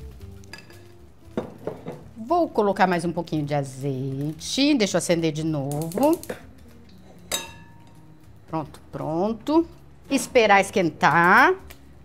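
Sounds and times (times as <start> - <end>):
metal utensil clinking glass bowl: 7.2 - 8.0.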